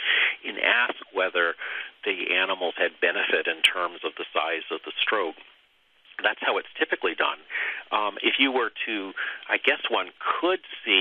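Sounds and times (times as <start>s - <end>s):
person talking: 0.0s - 5.5s, 6.1s - 11.0s.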